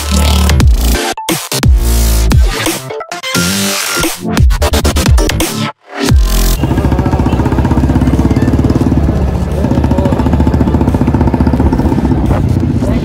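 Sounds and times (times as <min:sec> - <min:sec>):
scooter engine running: 0:06.1 - 0:13.0.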